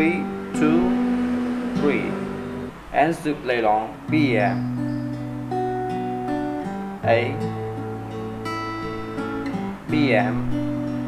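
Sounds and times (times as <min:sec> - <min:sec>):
acoustic guitar picked chord: 0:00.0 - 0:11.0.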